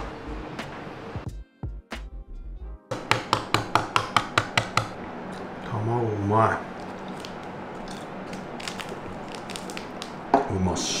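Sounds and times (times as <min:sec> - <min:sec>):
egg shell tapping on table: 0:02.9 - 0:05.0.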